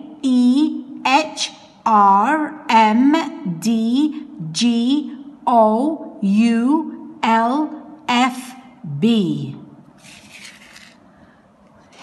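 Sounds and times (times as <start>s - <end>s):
low room noise: 0.0s - 12.0s
hand brushing paper page: 10.0s - 11.0s.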